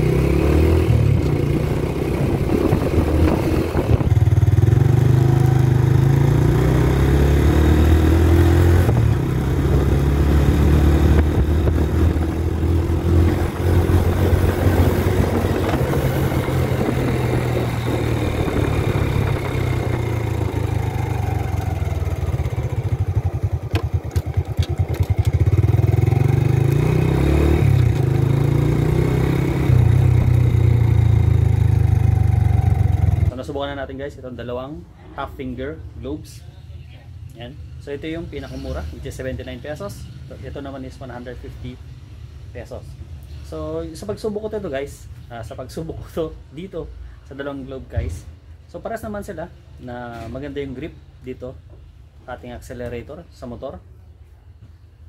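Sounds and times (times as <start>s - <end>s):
small motorcycle running: 0.0s - 33.3s
wind rumble on microphone: 1.0s - 5.8s, 7.9s - 22.1s.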